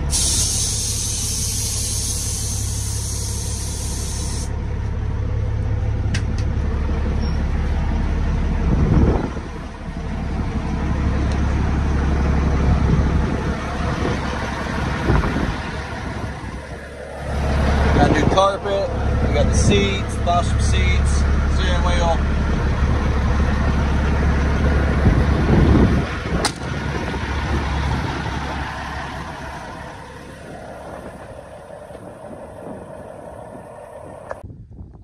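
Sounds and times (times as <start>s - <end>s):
air hissing: 0.0s - 4.5s
truck engine rumbling: 0.0s - 34.9s.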